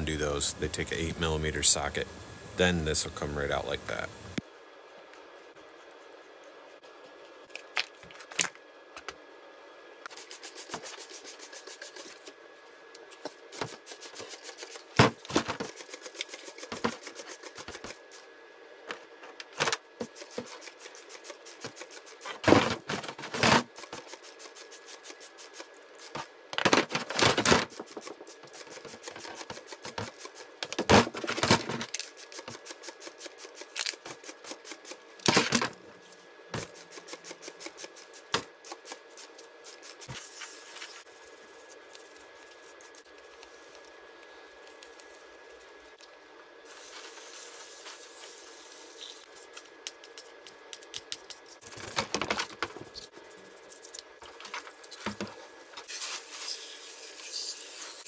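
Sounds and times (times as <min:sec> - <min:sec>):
brushing and scraping plastic parts: 0:10.1 - 0:12.4, 0:13.0 - 0:18.2, 0:19.1 - 0:35.1.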